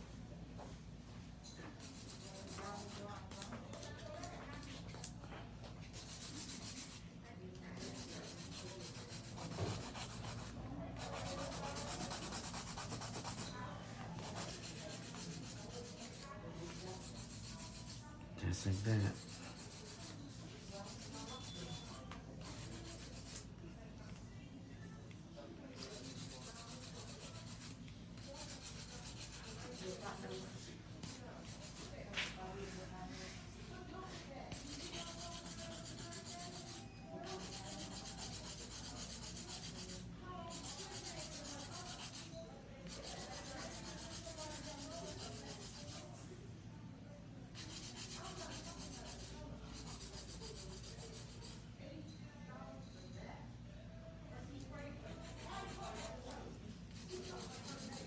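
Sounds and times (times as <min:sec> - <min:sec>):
nail file rubbing on nail: 0:01.7 - 0:05.2, 0:05.8 - 0:07.1, 0:07.7 - 0:13.6, 0:14.2 - 0:23.5, 0:25.7 - 0:32.3, 0:34.1 - 0:46.1, 0:47.5 - 0:51.6, 0:55.0 - 0:58.0.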